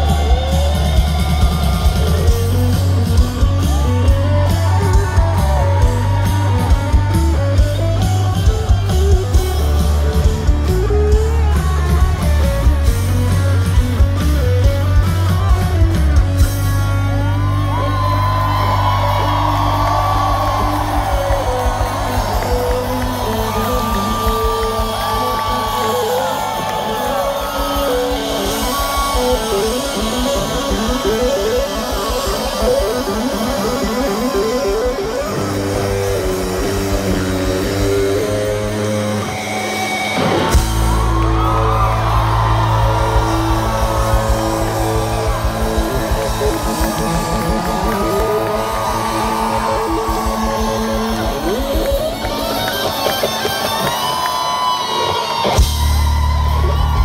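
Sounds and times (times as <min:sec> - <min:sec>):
distorted electric guitar riffing: 0:00.0 - 0:57.0
rock band playing live: 0:00.0 - 0:57.0.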